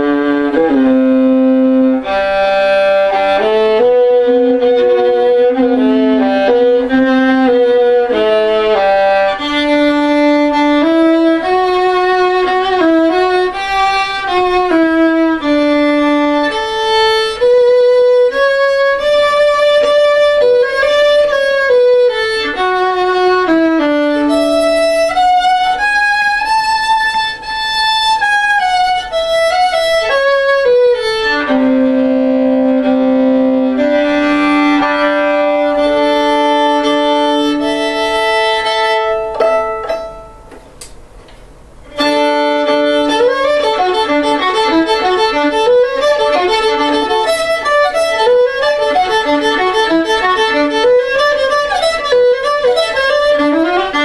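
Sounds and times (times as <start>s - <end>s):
solo violin melody: 0.0s - 40.6s, 41.9s - 54.0s.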